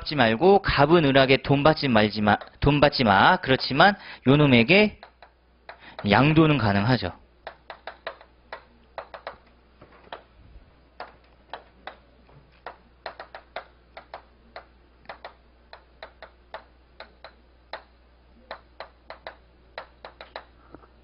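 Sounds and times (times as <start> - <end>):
chalk tapping on chalkboard: 2.4 - 2.6, 7.4 - 9.4, 11.0 - 17.9, 18.5 - 20.5.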